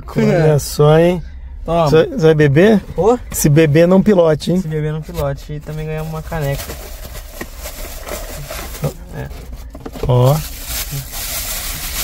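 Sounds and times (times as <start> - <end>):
cardboard and plastic rustling: 5.1 - 12.0.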